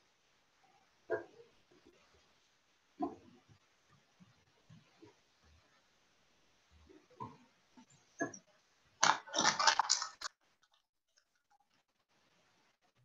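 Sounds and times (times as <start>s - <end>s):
loud rustling crackling noise: 9.0s - 12.3s.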